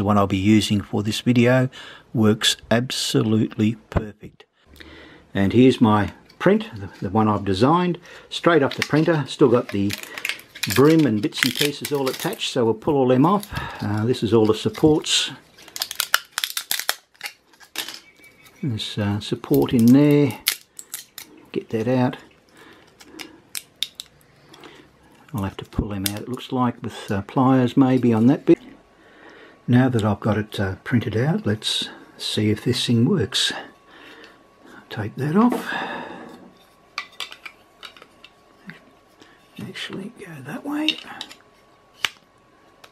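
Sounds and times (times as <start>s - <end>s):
plastic snapping and cracking: 9.7s - 12.5s, 15.6s - 18.0s, 19.5s - 21.3s, 22.9s - 24.2s.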